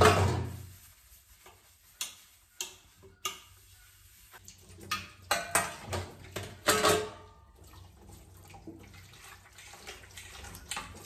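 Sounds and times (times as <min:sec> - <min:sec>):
dishes clinking: 0:04.8 - 0:07.4.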